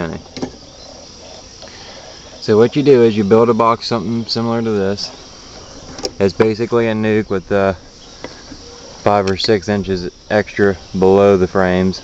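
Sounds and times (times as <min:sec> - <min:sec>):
insects chorus: 0:00.0 - 0:12.0.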